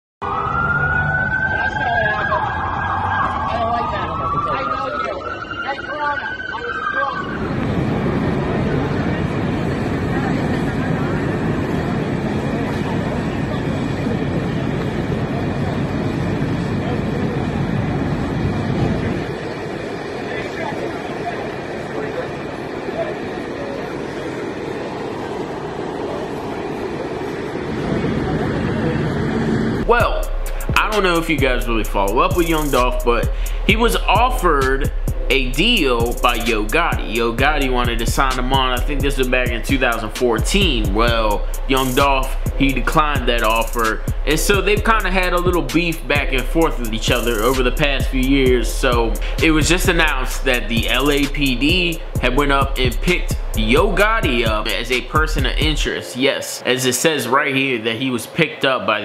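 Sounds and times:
traffic noise: 0:00.2 - 0:34.2, 0:34.9 - 0:58.6
siren wailing: 0:00.2 - 0:56.0
street rumble: 0:00.2 - 0:56.0
indistinct voices: 0:01.2 - 0:59.0.

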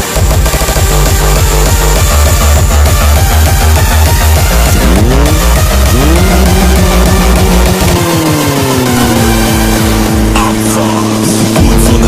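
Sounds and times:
engine revving: 0:00.0 - 0:12.0
loud music with heavy beat: 0:00.0 - 0:12.0.

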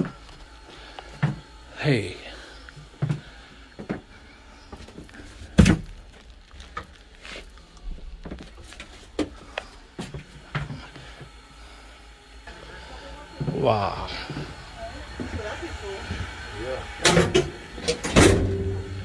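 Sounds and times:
voices: 0:12.1 - 0:18.5.

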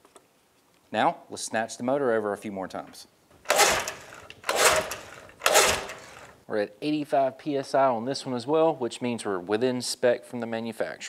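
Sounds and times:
engine cranking without firing: 0:03.4 - 0:06.4
recoil starter cord pulls: 0:03.4 - 0:06.4.

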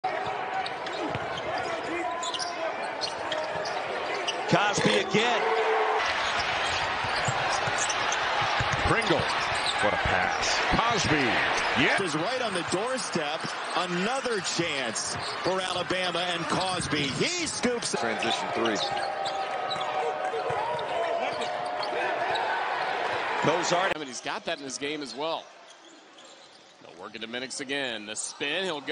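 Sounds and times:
crowd noise in large hall: 0:00.0 - 0:28.9.

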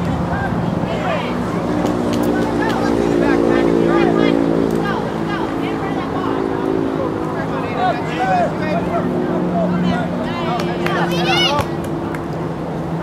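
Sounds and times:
voices calling out: 0:00.0 - 0:12.6.

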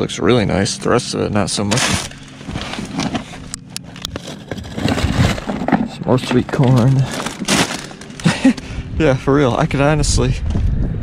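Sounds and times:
low steady hum: 0:00.0 - 0:11.0
plastic and cardboard rustling: 0:01.7 - 0:08.6.

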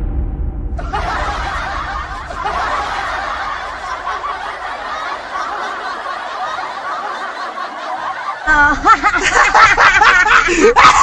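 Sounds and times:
people laughing hard: 0:00.8 - 0:11.0.

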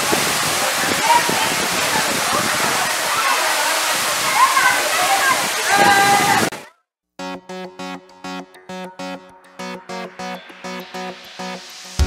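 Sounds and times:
waterfall rushing: 0:00.0 - 0:06.6
people calling out and chattering: 0:00.0 - 0:06.7.

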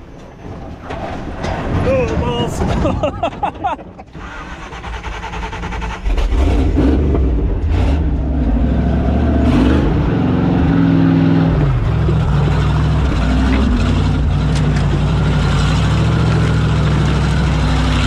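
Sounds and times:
off-road vehicle engine revving: 0:04.1 - 0:18.0.

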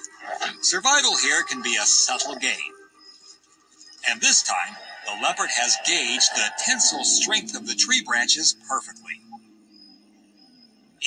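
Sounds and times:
soft sustained background music tones: 0:00.0 - 0:11.0.

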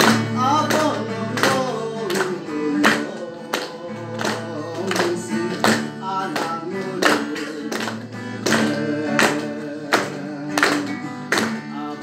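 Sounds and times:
acoustic guitar strumming: 0:00.0 - 0:12.0
man singing into a microphone: 0:00.0 - 0:12.0.

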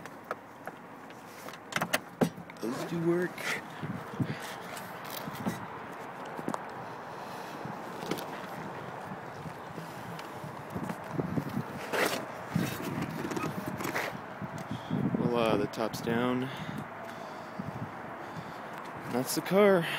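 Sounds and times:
folding frame clicks and knocks: 0:01.5 - 0:02.4.

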